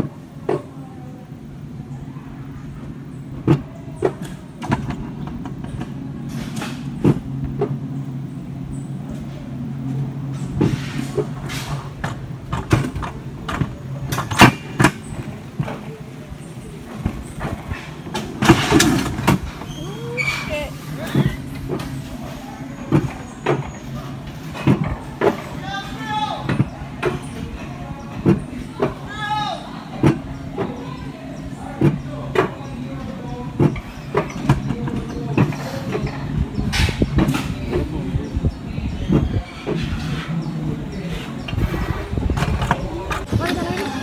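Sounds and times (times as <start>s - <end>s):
coaster sled rattling on steel rails: 0.0s - 44.0s.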